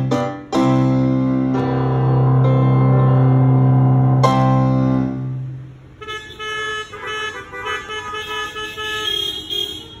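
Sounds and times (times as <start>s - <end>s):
car horns honking: 5.5s - 10.0s.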